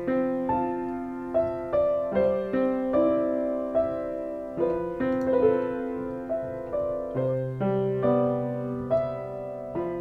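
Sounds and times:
soft slow piano music: 0:00.0 - 0:10.0.

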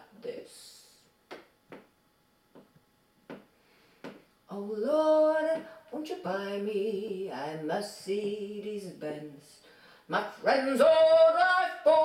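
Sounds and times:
sharp taps marking a beat: 0:02.5 - 0:04.3
person singing unaccompanied: 0:04.5 - 0:12.0.

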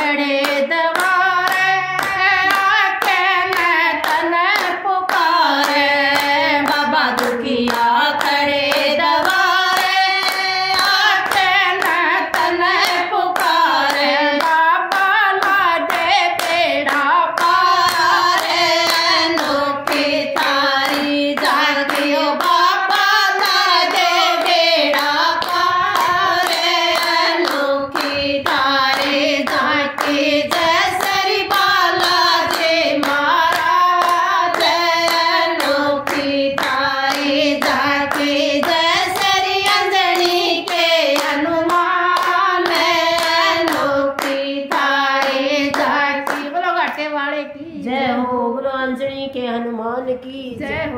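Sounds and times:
hands clapping in a steady beat: 0:00.0 - 0:47.0
women singing devotional song: 0:00.0 - 0:50.9.

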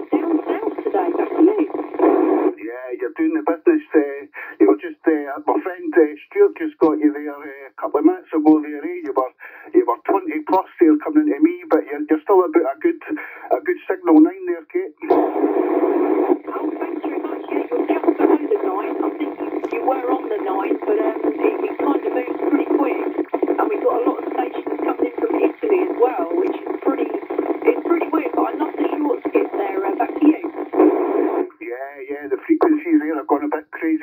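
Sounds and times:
tinny voice over cb radio: 0:00.0 - 0:34.0.

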